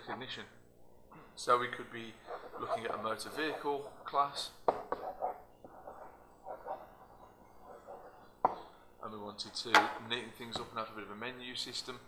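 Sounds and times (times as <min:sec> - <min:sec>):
pen rubbing on whiteboard: 0:02.2 - 0:08.2.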